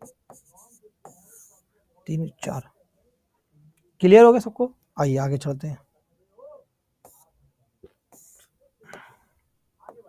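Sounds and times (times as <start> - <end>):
stylus scratching on screen: 0.0 - 1.7, 7.0 - 8.6.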